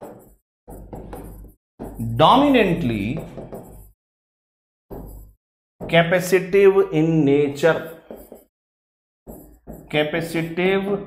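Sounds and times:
marker writing on whiteboard: 0.0s - 4.0s, 4.9s - 8.6s, 9.2s - 11.0s.

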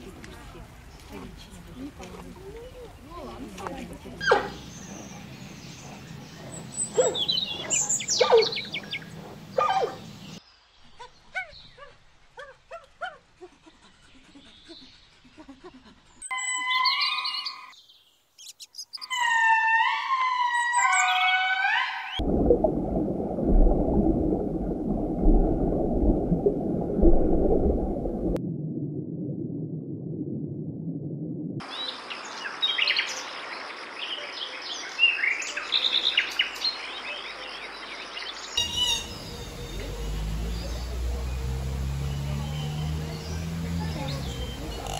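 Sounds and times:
steady outdoor hiss: 0.0s - 16.0s, 31.6s - 44.9s
small birds chirping: 0.5s - 12.0s, 16.2s - 19.3s, 31.7s - 44.9s.

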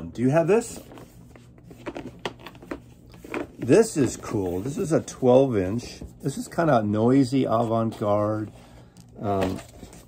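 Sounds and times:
cardboard record sleeve rustling: 0.2s - 10.0s.

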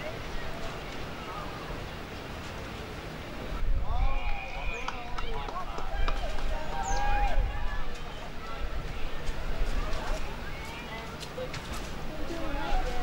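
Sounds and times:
wind rumble on microphone: 3.2s - 10.6s
people shouting and calling out: 3.8s - 9.2s.

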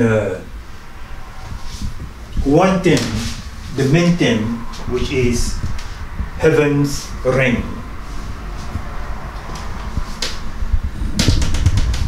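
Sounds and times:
low rumble: 0.4s - 12.0s
dull low thumps: 4.6s - 6.4s, 7.8s - 12.0s
sharp clicks and rustling: 11.0s - 12.0s.

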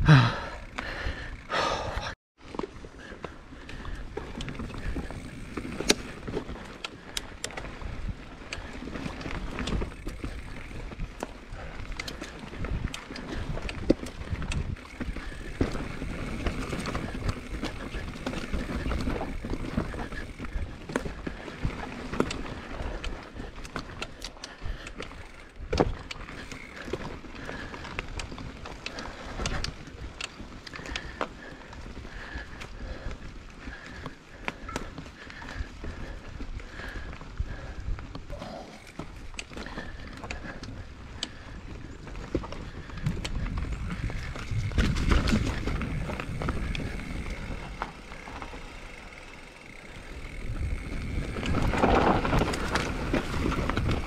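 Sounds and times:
bike clicking and rattling: 0.0s - 54.0s
bike tyres rolling over rocks: 2.4s - 54.0s
wind on microphone: 42.5s - 48.1s, 50.2s - 54.0s.

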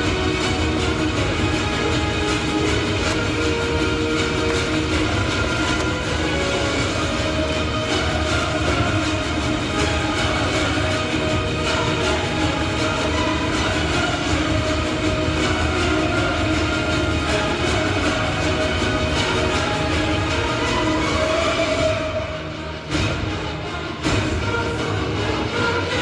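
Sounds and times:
stage backing music over pa: 0.0s - 26.0s.

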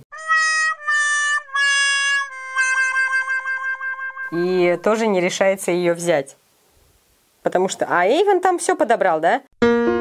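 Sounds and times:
sad trombone sound effect: 1.4s - 4.5s.

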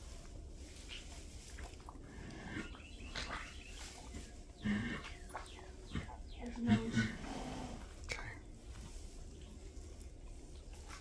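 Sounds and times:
horse grunting: 5.9s - 7.8s.

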